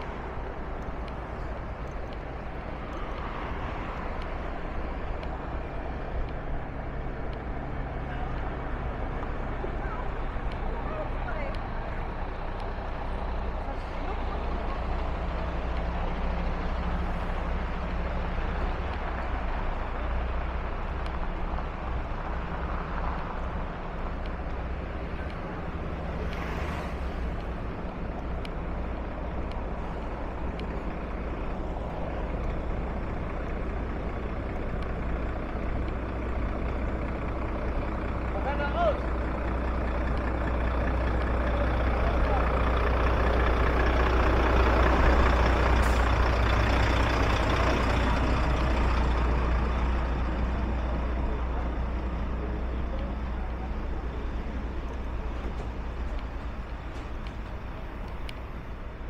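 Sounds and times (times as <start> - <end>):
diesel truck engine idling: 0.0 - 59.0.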